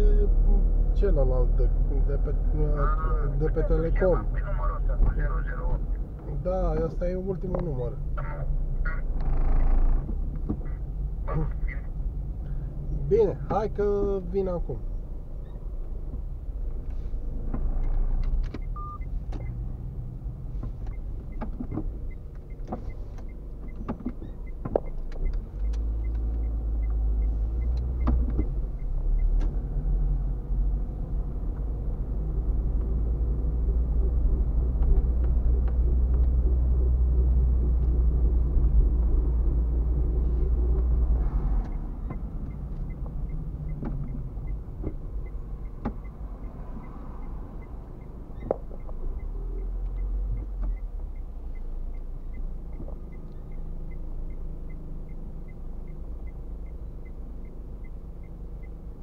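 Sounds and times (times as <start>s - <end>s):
car engine and road rumble: 0.0s - 59.0s
faint regular ticking: 41.6s - 59.0s.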